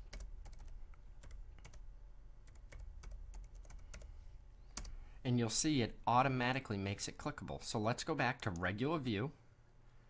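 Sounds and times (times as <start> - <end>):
typing on computer keyboard: 0.0 - 1.8, 2.4 - 4.1, 4.8 - 5.0
low steady hum: 0.0 - 10.0.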